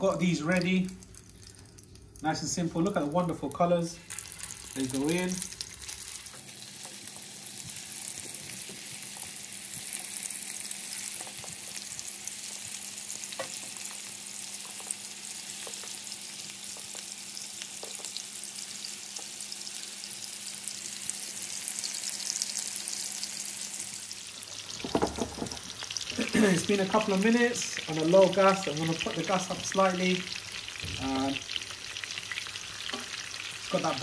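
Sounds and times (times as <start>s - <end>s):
patties sizzling in frying pan: 0.0s - 34.0s.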